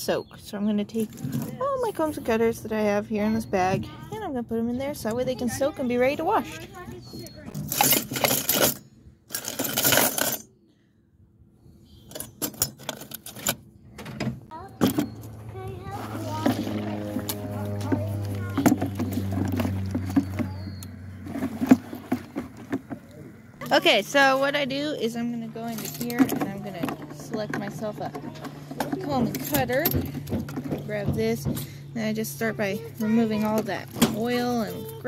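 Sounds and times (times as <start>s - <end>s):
metal cutters rattling into bucket: 7.6s - 10.5s, 25.4s - 31.4s
low steady hum: 14.5s - 35.0s.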